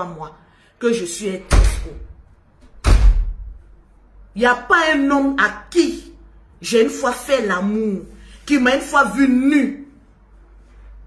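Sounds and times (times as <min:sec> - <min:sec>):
loud low thump: 0:02.7 - 0:03.6.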